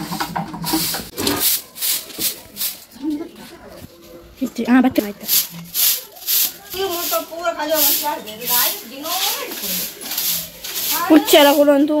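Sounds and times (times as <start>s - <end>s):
broom sweeping concrete floor: 0.0s - 3.7s, 5.0s - 12.0s.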